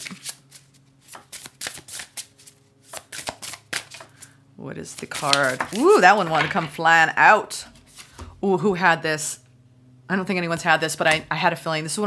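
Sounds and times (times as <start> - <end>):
cards being shuffled: 0.0 - 6.7, 7.8 - 8.2.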